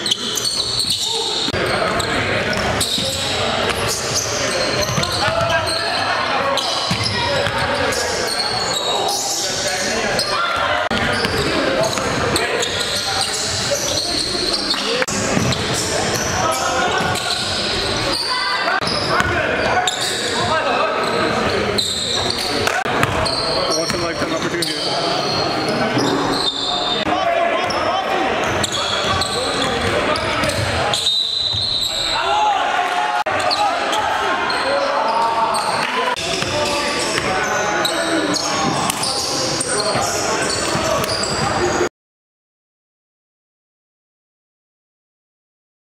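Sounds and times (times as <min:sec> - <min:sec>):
sneakers squeaking on court: 0:00.0 - 0:32.2, 0:33.4 - 0:41.9
voices in a gym: 0:00.0 - 0:41.9
basketball bouncing on wooden floor: 0:22.9 - 0:23.3.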